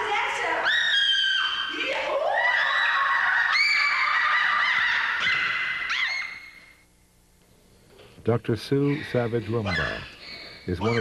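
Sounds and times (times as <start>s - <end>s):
bonobo high-pitched calls: 0.6s - 6.8s, 8.7s - 11.0s.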